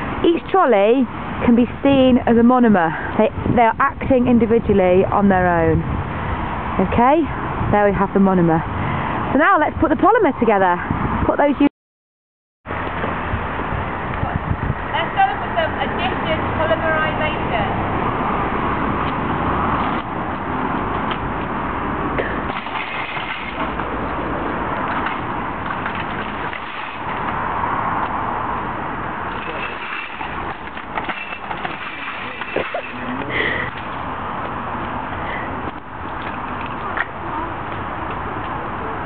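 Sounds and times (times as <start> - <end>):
steady background noise: 12.7 - 39.0
shopping trolleys rattling: 29.3 - 33.2.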